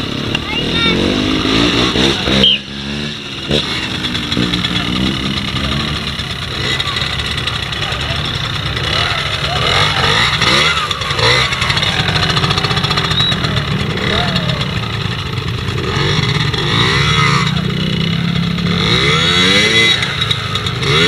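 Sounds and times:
motorcycle engine revving: 0:00.0 - 0:21.0.

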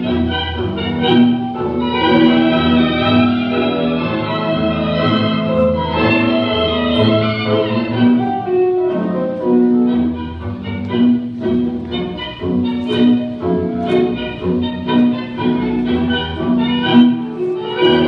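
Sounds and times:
piano: 0:00.0 - 0:18.0
violins playing melody: 0:00.0 - 0:18.0.

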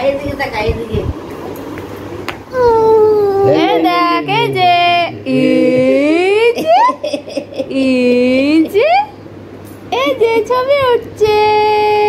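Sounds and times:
person vocalising sing-song: 0:02.5 - 0:06.6.

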